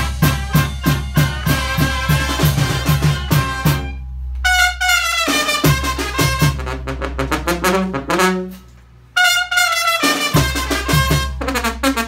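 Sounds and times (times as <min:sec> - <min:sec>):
drum beating: 0:00.0 - 0:04.0, 0:05.1 - 0:08.0, 0:10.0 - 0:11.9
brass band playing: 0:00.0 - 0:12.0.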